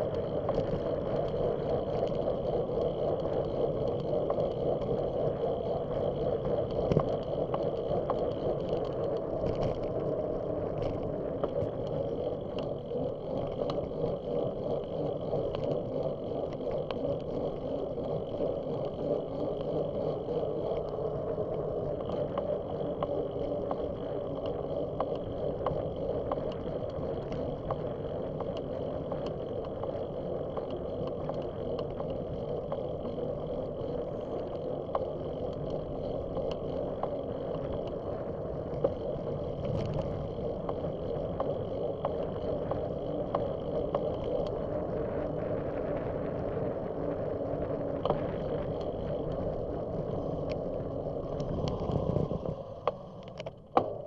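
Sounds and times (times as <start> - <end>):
bicycle tyre rumble: 0.0 - 54.0
small ticks and rattles: 0.0 - 54.0
wind on microphone: 0.0 - 54.0.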